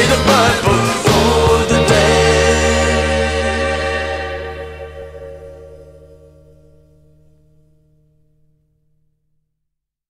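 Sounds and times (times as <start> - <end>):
blues-rock closing chord: 0.0 - 7.1
deep bass note: 0.0 - 7.4.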